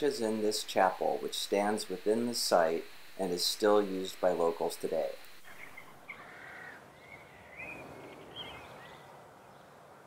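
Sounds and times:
open-air ambience: 0.0s - 10.0s
faint bird calls: 5.4s - 9.7s.

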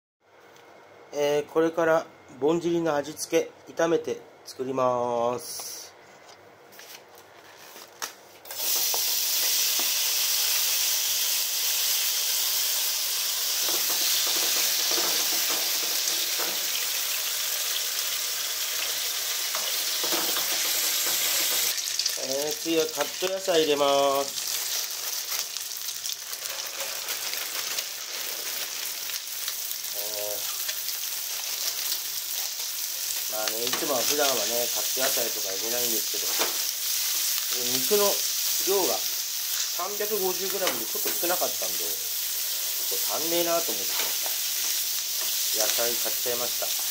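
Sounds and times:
meat sizzling in frying pan: 8.5s - 46.9s
turner stirring food in pan: 30.4s - 46.9s.

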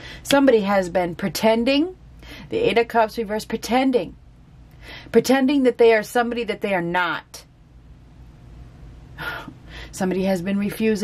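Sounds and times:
woman speaking: 0.1s - 4.2s, 5.1s - 7.5s, 9.2s - 11.0s
woman drawing a sharp breath: 4.8s - 5.1s.

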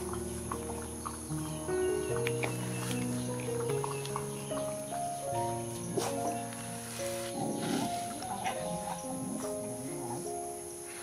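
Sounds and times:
music with held notes: 0.0s - 11.0s.

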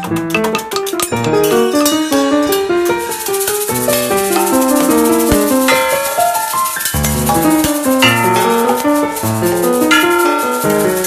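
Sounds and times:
metal percussion rattling: 0.0s - 11.0s
scattered piano notes: 0.0s - 11.0s.

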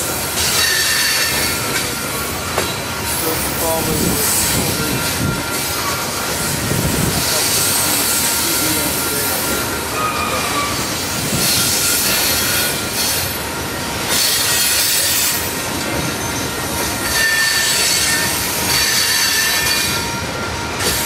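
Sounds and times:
train wheel-on-rail rumble: 0.0s - 21.0s
faint thin wheel squeals: 7.7s - 13.2s, 16.1s - 20.1s.

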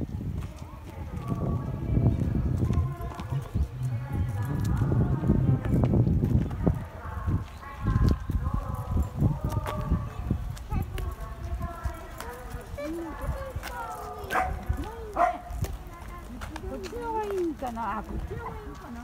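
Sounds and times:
people talking and calling: 0.0s - 19.0s.

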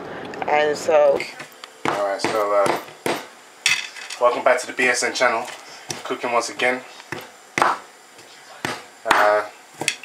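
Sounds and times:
wooden pestle knocking: 1.2s - 3.3s, 5.9s - 10.0s.

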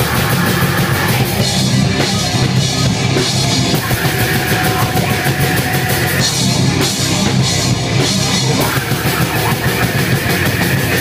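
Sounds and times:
heavy rock music: 0.0s - 11.0s.

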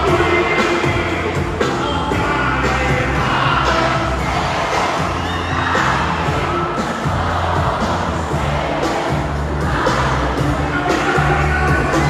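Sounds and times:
crowd cheering and singing along: 0.0s - 12.0s
hip-hop music with heavy bass: 0.0s - 12.0s.

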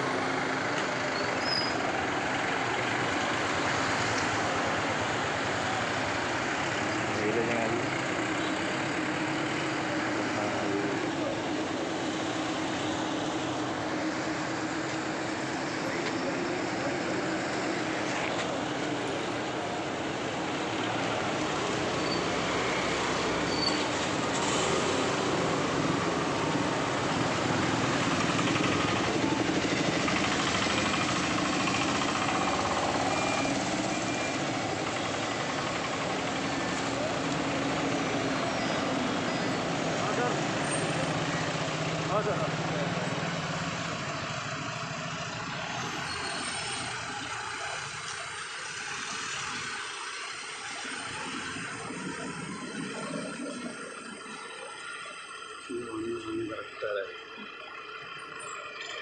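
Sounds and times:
cars driving past: 0.0s - 59.0s
indistinct voices talking: 0.0s - 59.0s.

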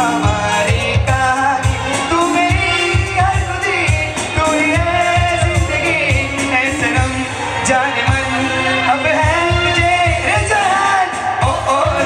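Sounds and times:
low drum beat: 0.0s - 8.4s, 9.1s - 12.0s
voices singing: 0.0s - 12.0s.

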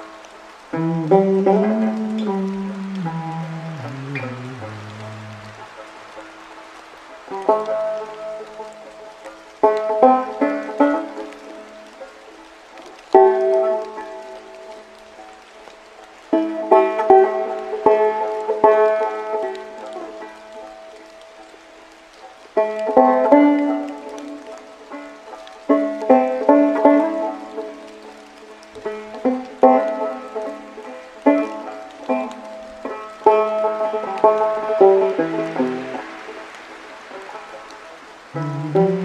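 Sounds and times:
steady rain hiss: 0.0s - 39.0s
banjo plucked notes: 0.7s - 6.3s, 7.3s - 12.4s, 16.3s - 21.1s, 22.6s - 39.0s.

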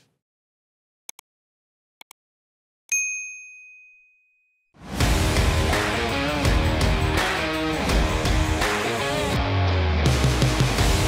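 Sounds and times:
music: 4.8s - 11.0s.

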